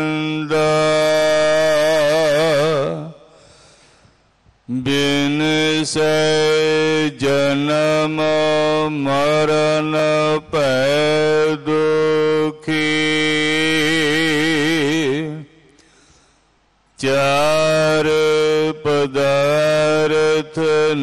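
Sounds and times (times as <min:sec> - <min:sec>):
man chanting: 0:00.0 - 0:03.4, 0:04.7 - 0:15.8, 0:17.0 - 0:21.0.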